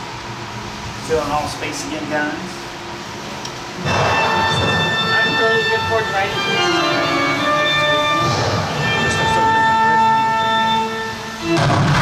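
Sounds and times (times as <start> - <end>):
ringing bell-like tones: 3.8 - 11.0
amusement ride music with bell tones: 4.0 - 9.4.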